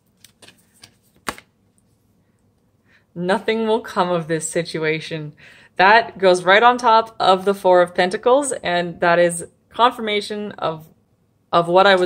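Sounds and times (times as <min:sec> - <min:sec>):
cards clicking and tapping: 0:00.1 - 0:01.5.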